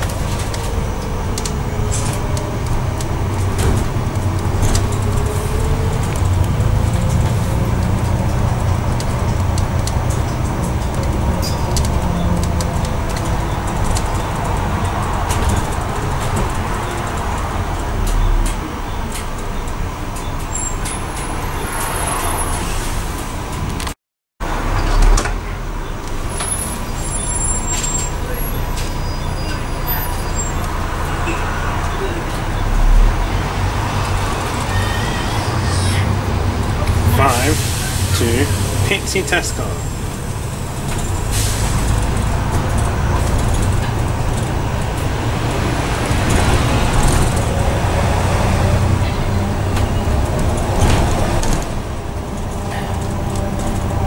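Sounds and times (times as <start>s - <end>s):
bus engine running: 0.0s - 54.0s
road noise: 0.0s - 54.0s.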